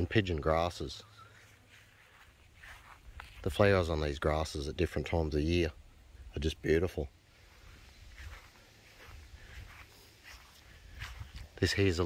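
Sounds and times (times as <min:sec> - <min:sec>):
soft rustles of grass: 0:00.0 - 0:12.0.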